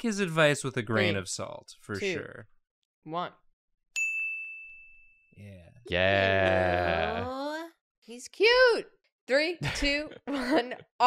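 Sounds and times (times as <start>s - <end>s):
person speaking countdown: 0.9s - 1.2s, 1.9s - 2.3s, 5.9s - 7.5s
high bell-like ding: 4.0s - 5.4s.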